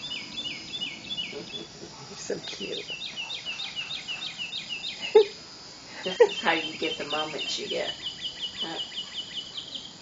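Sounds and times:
bird chirping: 0.0s - 5.4s, 6.0s - 10.0s.

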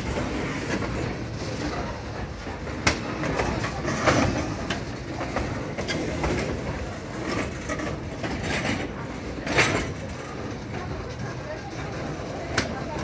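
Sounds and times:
railway cars rumbling on rails: 0.0s - 13.0s
wheels clicking over rail joints: 0.0s - 13.0s.

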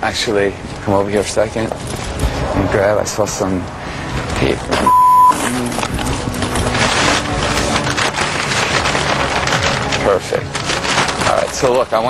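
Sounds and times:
background voices: 0.0s - 7.0s
paper rustling and crinkling: 0.6s - 2.4s, 5.4s - 12.0s
loud steady bleep: 4.8s - 5.4s.

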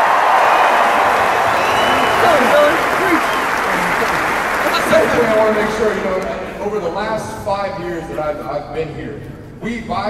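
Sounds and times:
shouts and whoops: 0.0s - 4.8s
crowd applauding and cheering: 0.0s - 6.6s.

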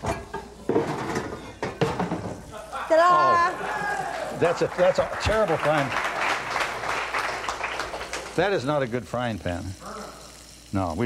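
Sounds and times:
metal pans clattering: 0.0s - 2.4s.

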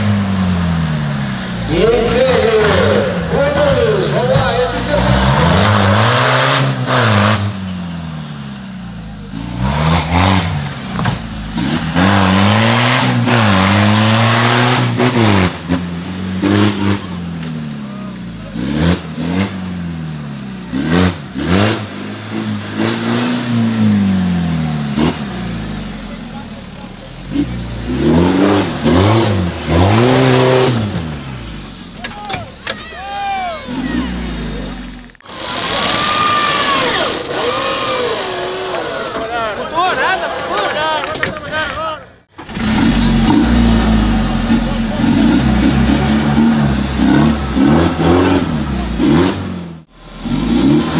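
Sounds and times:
buggy engine revving: 0.0s - 41.0s, 42.2s - 50.9s
crowd shouting: 32.0s - 42.2s.

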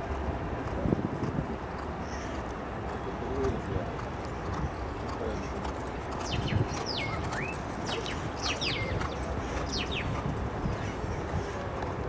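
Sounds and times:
horse galloping on dirt: 0.0s - 2.5s, 3.4s - 12.0s
outdoor background noise: 0.0s - 12.0s
bird whistling call: 6.3s - 9.0s.

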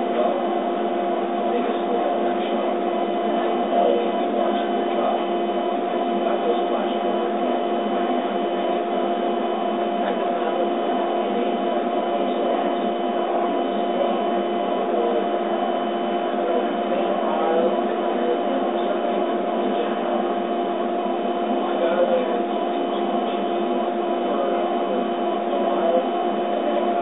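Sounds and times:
laser cutter humming: 0.0s - 27.0s.

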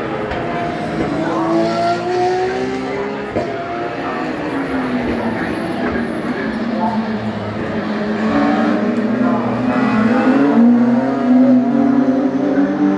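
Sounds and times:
racing car engine at full throttle: 0.0s - 12.9s.

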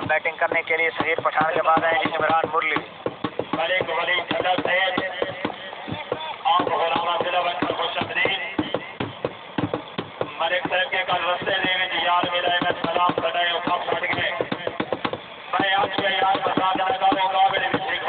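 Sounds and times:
people talking: 0.0s - 8.9s, 10.3s - 14.9s, 15.5s - 18.0s.

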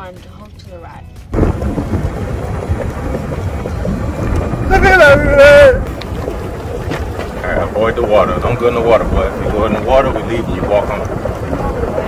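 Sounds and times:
wind buffeting microphone: 1.3s - 12.0s.

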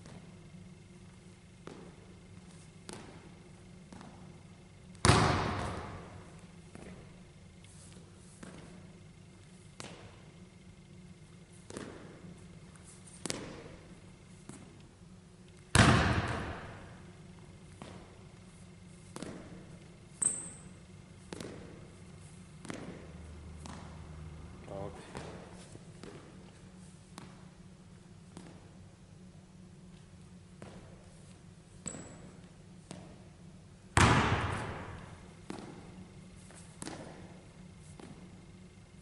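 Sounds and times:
basketball bouncing on hardwood: 5.0s - 6.1s, 15.7s - 16.9s, 34.0s - 35.8s
shoe squeak: 20.1s - 20.8s.

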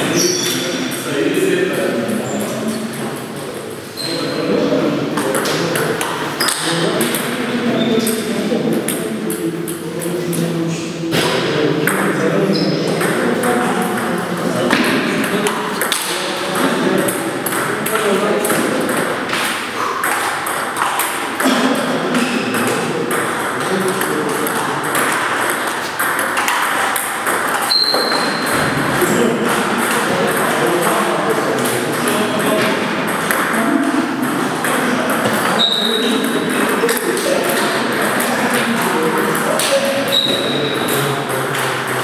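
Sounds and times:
background voices talking: 0.0s - 42.0s.

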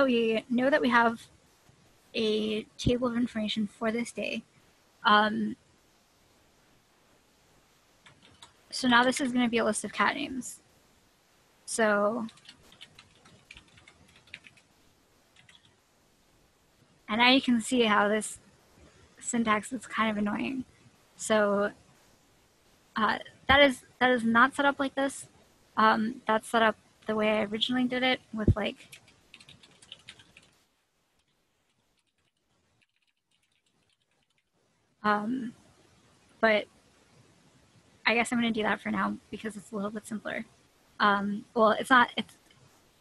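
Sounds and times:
keyboard typing: 8.0s - 9.5s, 12.2s - 14.7s, 15.3s - 15.8s, 28.6s - 30.6s, 31.2s - 34.5s.

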